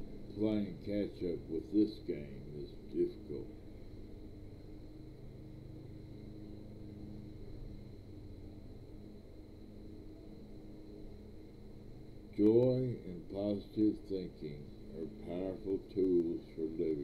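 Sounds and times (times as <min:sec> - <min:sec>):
faint low hum: 0:00.0 - 0:17.0
thin high-pitched whine: 0:00.0 - 0:17.0.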